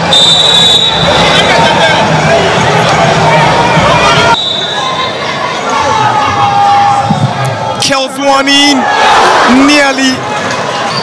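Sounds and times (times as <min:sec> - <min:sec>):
football crowd shouting and cheering: 0:00.0 - 0:11.0
high whistle tone: 0:00.1 - 0:01.6, 0:04.2 - 0:05.1.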